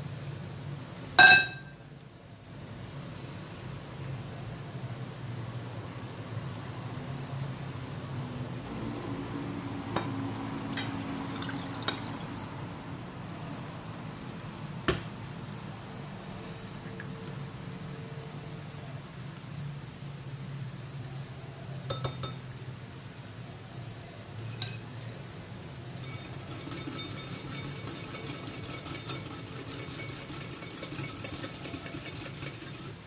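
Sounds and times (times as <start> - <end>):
utensils clinking on glass: 24.4 - 24.9
whisk clinking against glass bowl: 24.4 - 24.9, 26.0 - 32.9.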